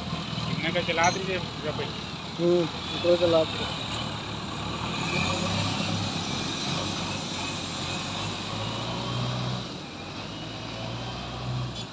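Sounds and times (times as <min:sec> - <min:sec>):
diesel engine running: 0:00.0 - 0:11.9.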